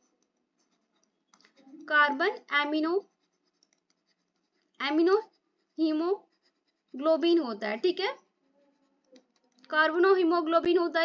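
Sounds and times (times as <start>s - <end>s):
pen scratching on paper: 0.0s - 10.3s.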